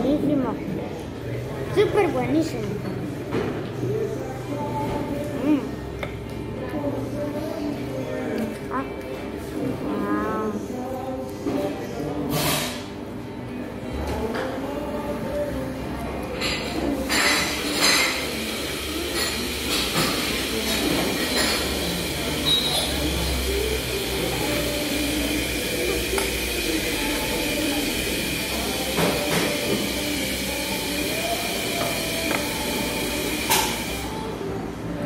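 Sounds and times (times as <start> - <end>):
cutlery and glasses clinking: 16.3 - 18.4, 19.0 - 23.0
high machine whine: 18.3 - 35.0.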